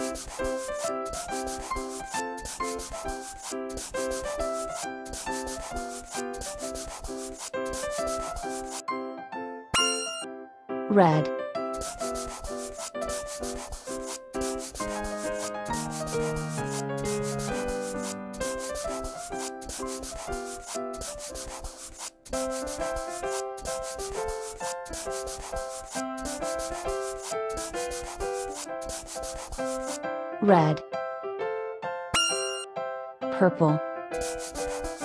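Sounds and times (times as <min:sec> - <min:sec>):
marker scribbling: 0:00.0 - 0:08.8, 0:09.8 - 0:10.2, 0:11.8 - 0:30.0, 0:32.2 - 0:32.7, 0:34.2 - 0:35.0
simple keyboard tune: 0:31.9 - 0:34.1.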